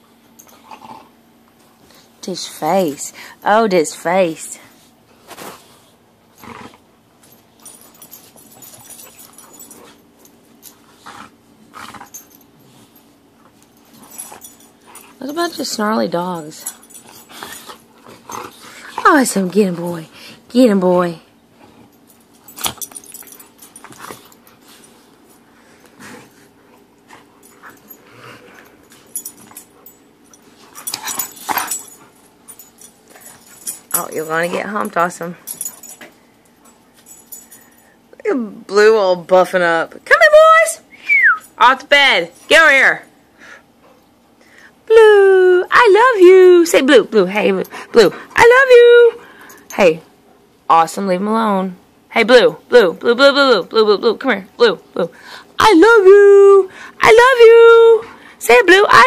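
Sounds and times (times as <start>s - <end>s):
dogs growling and snarling: 0.3s - 2.2s, 5.2s - 13.1s, 13.7s - 20.5s, 21.5s - 36.0s
dogs growling low: 0.5s - 1.3s, 6.4s - 6.9s, 10.9s - 12.9s, 16.9s - 19.0s, 25.8s - 29.8s
dogs scuffling: 21.6s - 37.8s.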